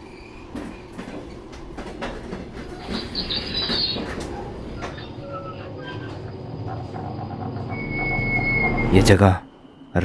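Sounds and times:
train wheels clicking over rail joints: 0:00.5 - 0:05.0
high metallic wheel squeal: 0:07.5 - 0:09.9.

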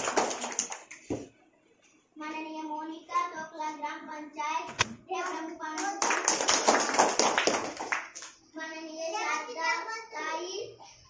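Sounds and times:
children clapping: 0:00.0 - 0:01.0, 0:05.2 - 0:08.4
child speaking: 0:02.2 - 0:06.2, 0:08.5 - 0:11.0.

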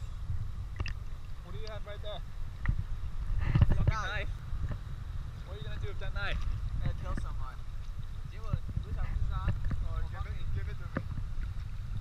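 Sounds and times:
wind and water buffeting microphone: 0:00.0 - 0:12.0.

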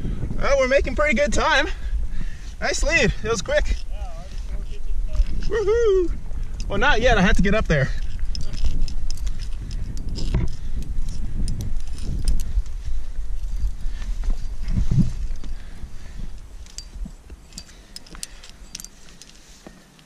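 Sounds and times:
low rumbling microphone noise: 0:00.0 - 0:19.2
climbing gear clinking: 0:02.8 - 0:20.0.

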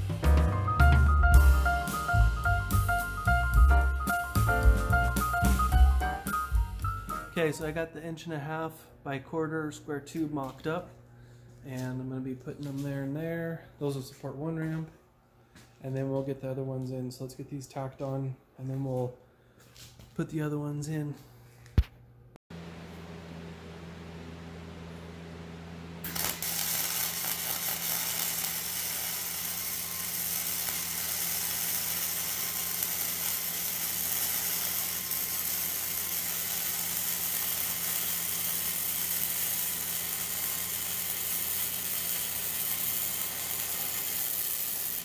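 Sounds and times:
steady low hum: 0:20.2 - 0:27.3
welding arc crackling: 0:26.0 - 0:45.0.

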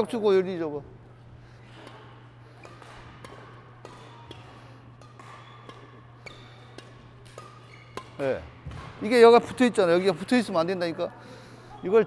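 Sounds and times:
steady low hum: 0:00.0 - 0:09.8
rackets hitting shuttlecocks: 0:01.6 - 0:10.4
shoe squeaks: 0:05.2 - 0:06.8, 0:07.4 - 0:08.4.

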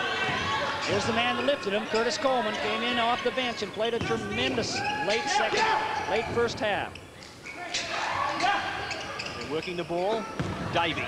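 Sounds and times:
crowd voices: 0:00.0 - 0:11.0
basketball bouncing on hardwood: 0:10.4 - 0:10.8.

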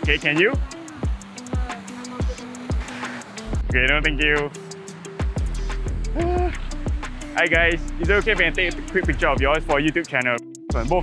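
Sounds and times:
steady low bass: 0:03.5 - 0:04.5, 0:05.4 - 0:10.0, 0:10.7 - 0:11.0
deep falling kick drum beats: 0:03.6 - 0:04.3, 0:05.2 - 0:09.8.

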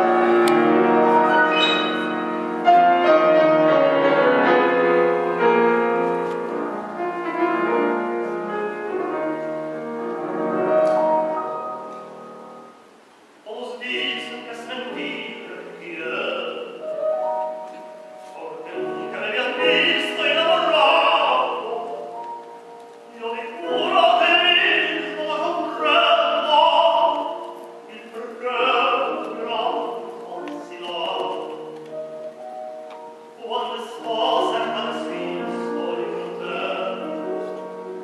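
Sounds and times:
grand piano chords: 0:00.0 - 0:38.0
operatic tenor singing: 0:13.4 - 0:16.9, 0:18.4 - 0:22.2, 0:23.1 - 0:31.9, 0:33.3 - 0:37.8.

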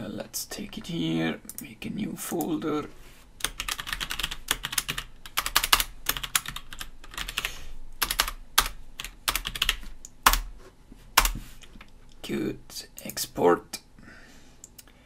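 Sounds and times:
typing on computer keyboard: 0:03.4 - 0:10.5.

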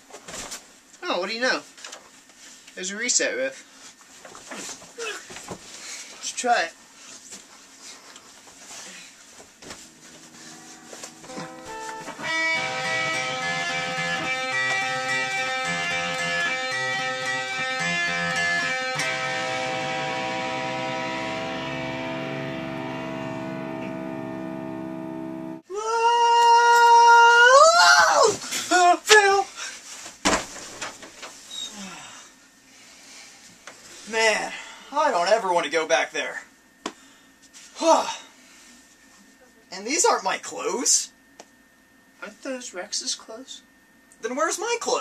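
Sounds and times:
electric guitar strummed chords: 0:09.8 - 0:25.6
rising wavering tone: 0:09.8 - 0:25.6.

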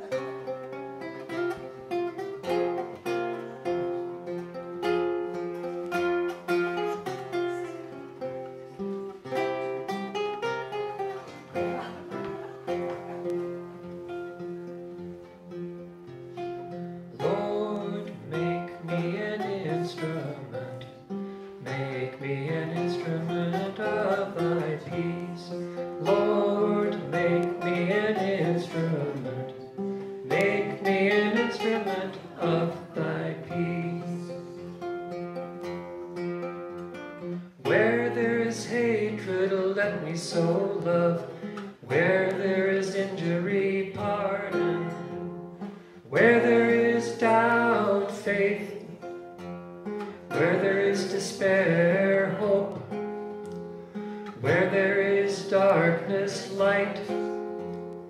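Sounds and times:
plucked acoustic guitar melody: 0:00.0 - 0:58.0
man singing: 0:17.0 - 0:34.9, 0:37.5 - 0:49.3, 0:50.2 - 0:53.3, 0:54.3 - 0:57.7.

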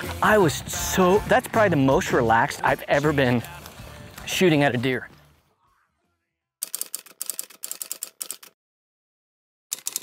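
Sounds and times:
typewriter key strikes: 0:06.6 - 0:08.6, 0:09.7 - 0:10.0.

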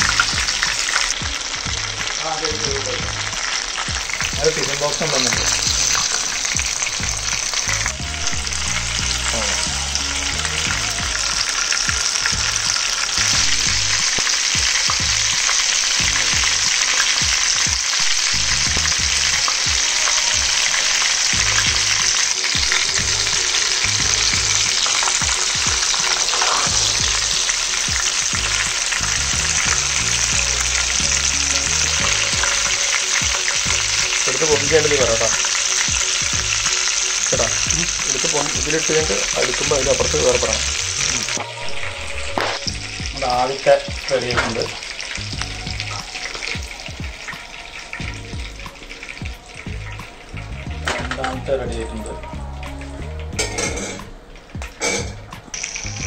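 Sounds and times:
oil sizzling in a frying pan: 0:00.0 - 0:56.0.

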